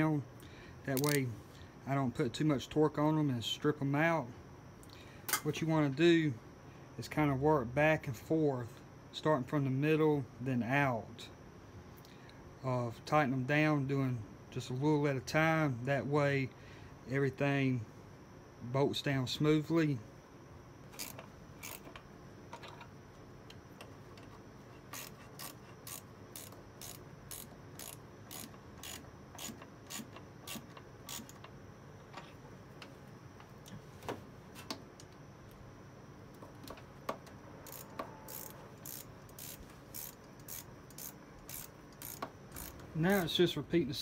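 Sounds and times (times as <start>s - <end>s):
ratchet clicking: 1.0s - 1.2s, 21.0s - 22.0s, 24.9s - 31.5s, 37.6s - 43.3s.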